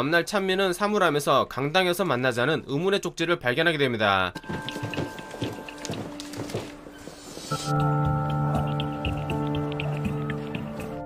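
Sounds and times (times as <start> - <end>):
footsteps on hard floor and stairs: 4.4 - 10.9.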